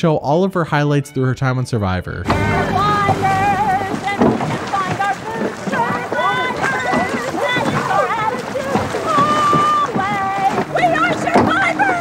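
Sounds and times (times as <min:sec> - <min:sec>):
woman singing: 0:02.3 - 0:12.0.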